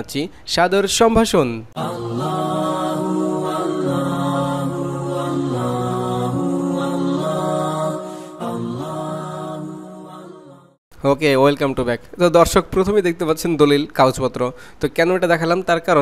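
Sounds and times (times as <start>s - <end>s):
chant-like intro music: 1.8s - 10.8s.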